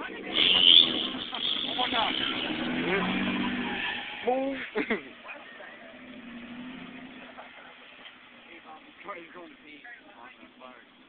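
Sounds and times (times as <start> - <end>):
tyre squeal: 0.3 - 4.6.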